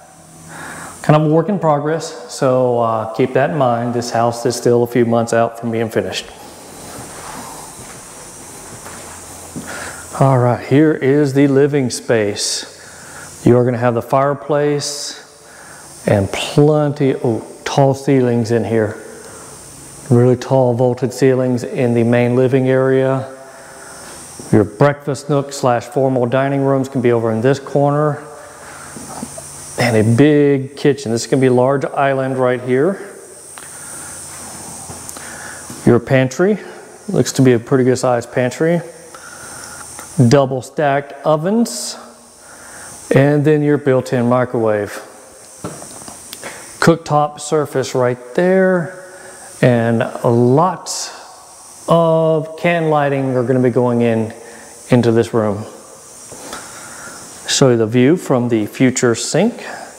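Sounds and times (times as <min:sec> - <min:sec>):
steady hiss: 0:00.0 - 0:59.9
footsteps on concrete floor: 0:06.2 - 0:10.1, 0:23.9 - 0:24.6, 0:28.8 - 0:29.4, 0:33.5 - 0:35.9, 0:45.6 - 0:46.7, 0:56.3 - 0:56.8.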